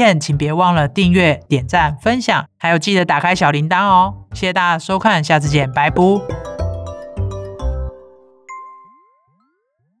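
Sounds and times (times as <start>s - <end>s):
bright chime: 6.3s - 9.5s.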